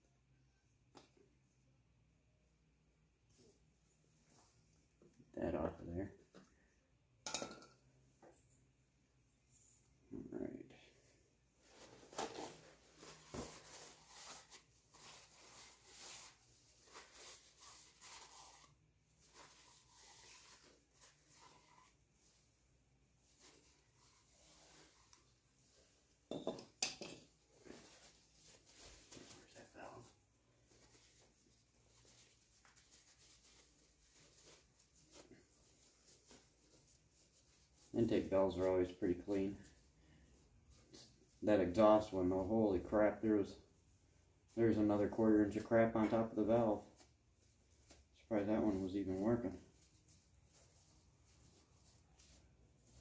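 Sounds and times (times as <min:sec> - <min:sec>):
paper towel crinkling: 0:11.6 - 0:26.2, 0:27.3 - 0:53.0.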